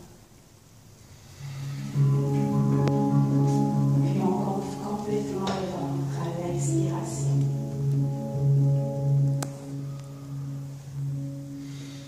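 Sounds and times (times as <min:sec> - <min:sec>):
handpan ringing notes: 0:01.6 - 0:12.0.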